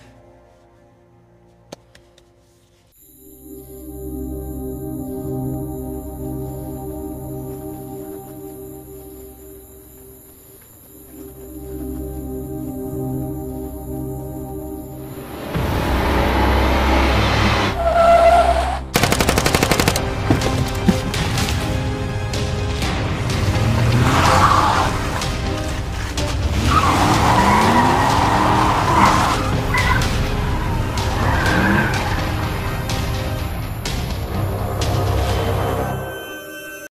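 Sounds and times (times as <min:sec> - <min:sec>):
dark film score music: 0:00.0 - 0:36.9
car tyres squealing: 0:15.7 - 0:18.9, 0:23.8 - 0:25.3, 0:26.0 - 0:32.8
automatic gunfire: 0:19.0 - 0:20.1.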